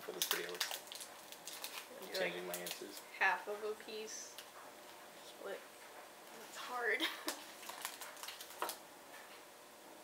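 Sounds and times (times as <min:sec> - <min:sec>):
chocolate bar breaking: 0:00.0 - 0:01.9, 0:07.6 - 0:08.8.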